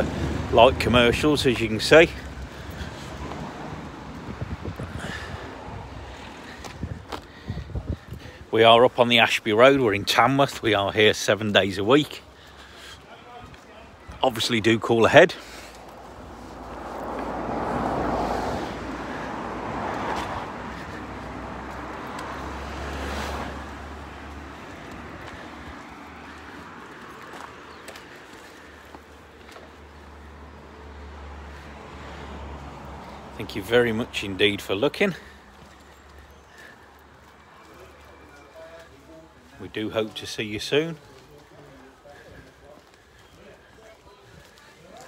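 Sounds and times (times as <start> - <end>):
traffic hum: 0.0 - 45.0
vehicle passing: 0.0 - 45.0
wind buffeting microphone: 2.7 - 8.5.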